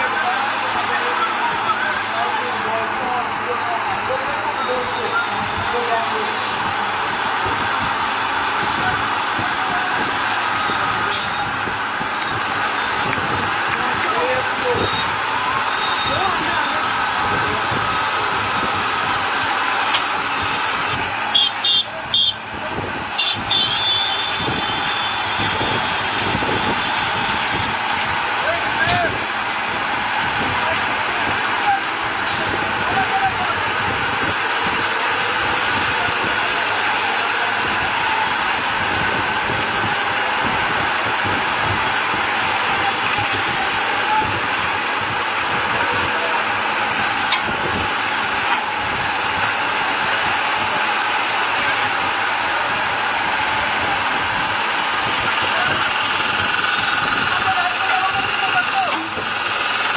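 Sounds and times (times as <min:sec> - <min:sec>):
heavy truck moving slowly: 0:00.0 - 0:59.9
indistinct voices: 0:00.0 - 0:59.9.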